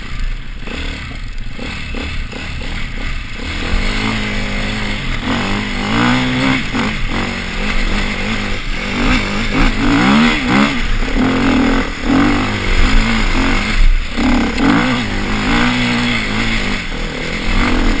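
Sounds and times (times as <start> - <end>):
motorcycle engine revving: 0.0 - 18.0.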